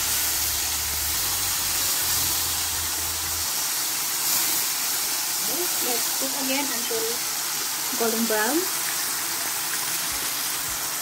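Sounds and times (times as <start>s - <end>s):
meat sizzling in hot oil: 0.0s - 11.0s.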